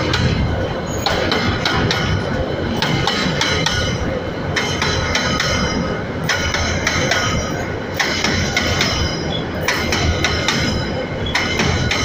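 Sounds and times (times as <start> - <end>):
train wheels rumbling on rail: 0.0 - 12.0
wheel squeal: 9.0 - 9.6.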